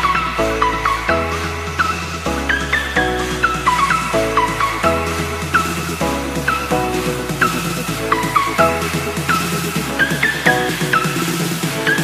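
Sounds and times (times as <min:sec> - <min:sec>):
electronic music: 0:00.0 - 0:12.0.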